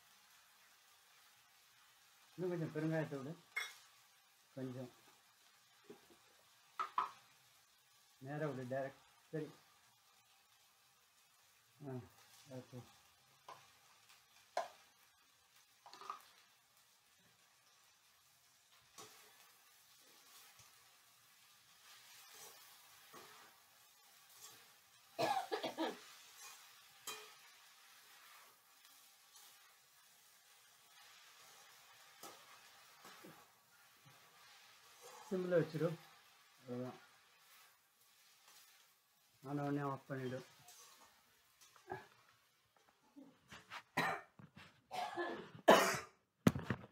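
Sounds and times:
person coughing: 25.2 - 26.0, 44.0 - 44.3, 44.9 - 46.2.

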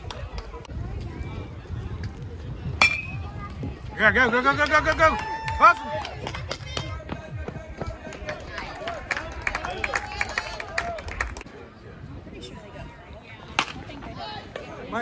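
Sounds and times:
spectators talking and calling out: 0.0 - 15.0
bat cracking ball: 13.6 - 13.8.

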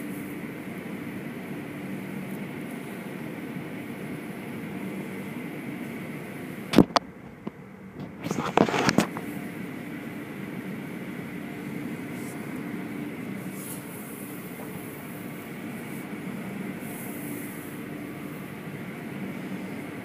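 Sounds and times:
car wash machinery rumble: 0.0 - 20.0.

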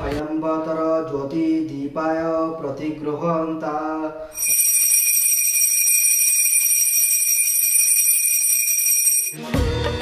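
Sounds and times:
hand bell ringing: 4.4 - 9.4.

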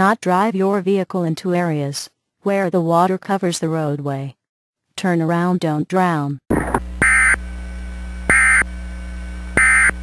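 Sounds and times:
broadcast hum: 5.0 - 10.0.

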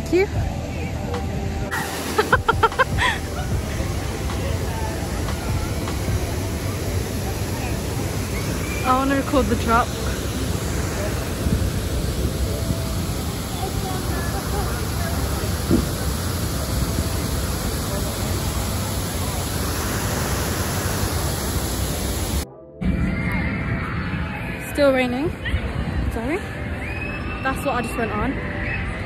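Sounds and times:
rain: 1.6 - 22.4
wind on microphone: 5.5 - 22.4.

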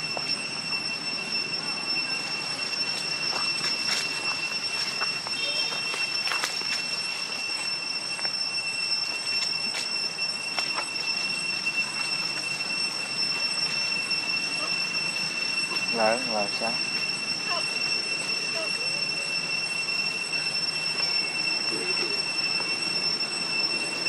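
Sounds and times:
high-pitched whine: 0.0 - 24.0.

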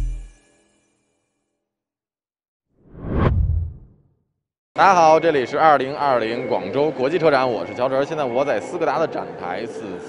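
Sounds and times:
whoosh transition effect: 2.8 - 4.0
low rumble: 2.9 - 4.0.

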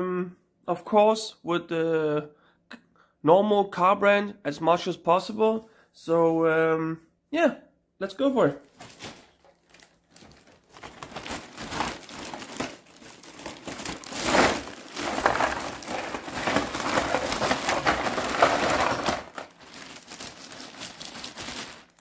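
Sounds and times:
plastic bag crinkling: 8.6 - 22.0
toy packages sliding and rustling: 8.7 - 22.0.

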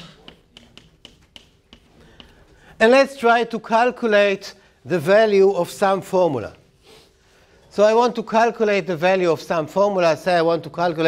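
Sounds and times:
chalk tapping on blackboard: 0.0 - 2.4.

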